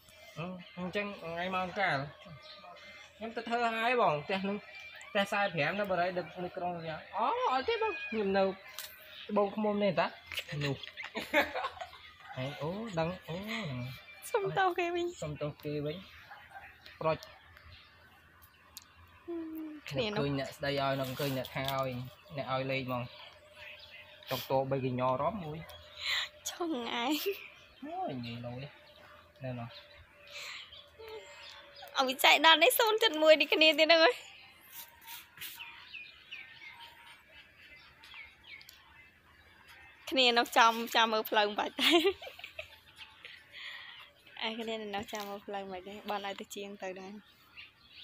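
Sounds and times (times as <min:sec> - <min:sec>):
small bird chirping: 0:00.0 - 0:48.0.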